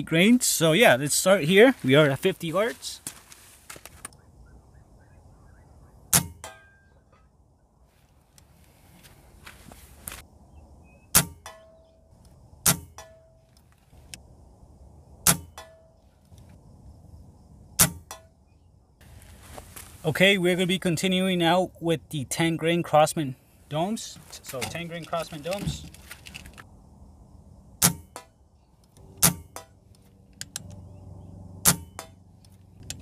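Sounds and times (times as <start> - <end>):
air rifle shots: 17.8 - 18.2.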